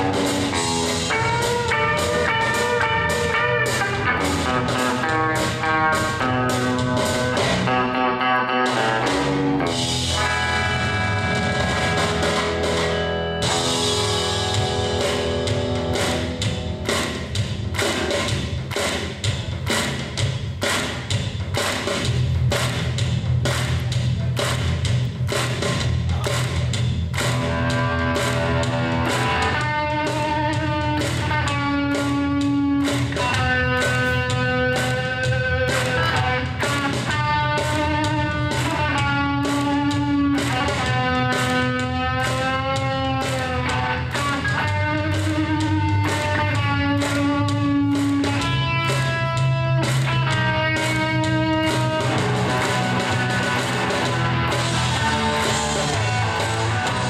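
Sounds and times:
drum beat: 0.0 - 8.0, 9.6 - 57.0
electric guitar playing: 0.0 - 18.7, 27.1 - 57.0
bass: 0.0 - 57.0.

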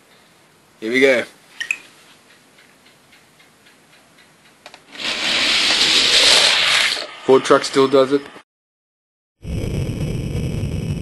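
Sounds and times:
toy cars rolling down track: 4.9 - 7.1.

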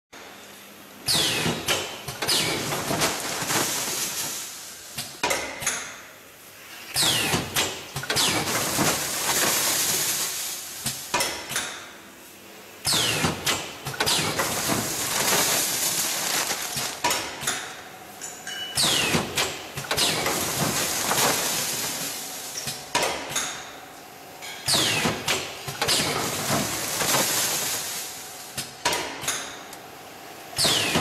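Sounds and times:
packing machine running: 1.1 - 5.1, 6.9 - 11.1, 12.9 - 17.8, 18.8 - 22.9, 24.7 - 28.8.

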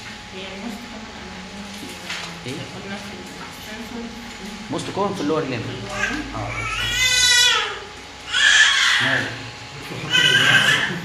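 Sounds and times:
audience laughing: 9.8 - 11.0.

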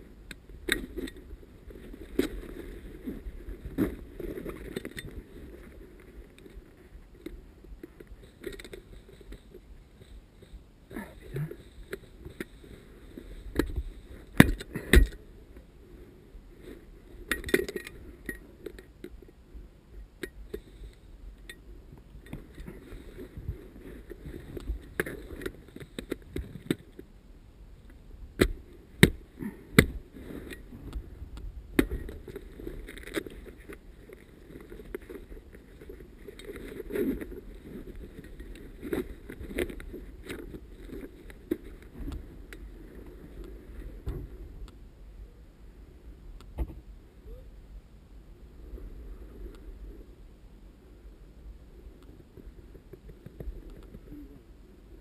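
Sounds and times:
dry grass rustling against clothing: 0.0 - 27.1, 28.4 - 44.6.

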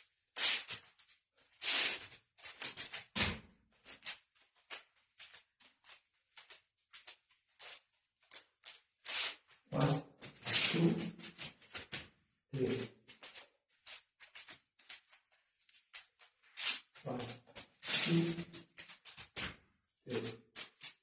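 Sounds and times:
sticks swishing through air: 9.1 - 11.4, 16.6 - 18.6.

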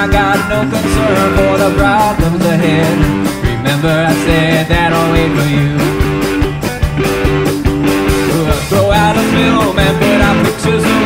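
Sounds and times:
drum kit beat: 0.0 - 11.0
rock band playing live: 0.0 - 11.0.

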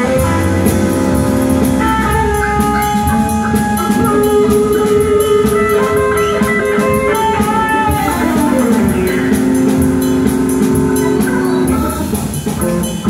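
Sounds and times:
drums and cymbals beat: 0.0 - 13.0
electric guitar lead lines: 0.0 - 13.0.

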